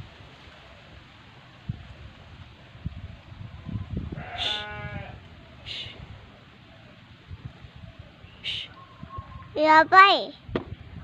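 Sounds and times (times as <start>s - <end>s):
livestock bleat: 4.2s - 5.2s.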